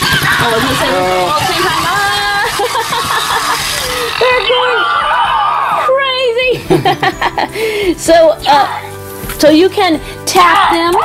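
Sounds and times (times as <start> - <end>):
toys chattering in cartoonish voices: 0.0 - 5.9
high wavering squeal: 3.3 - 6.0.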